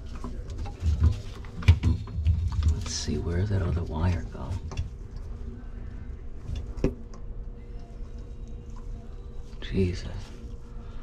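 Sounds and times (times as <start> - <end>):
steady low hum: 0.0 - 11.0
wires rustling: 0.0 - 11.0.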